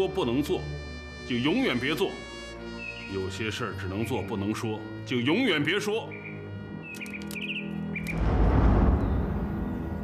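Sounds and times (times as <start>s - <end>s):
sustained music: 0.0s - 10.0s
songbird chirping: 1.2s - 10.0s
deep rushing swell: 8.2s - 10.0s.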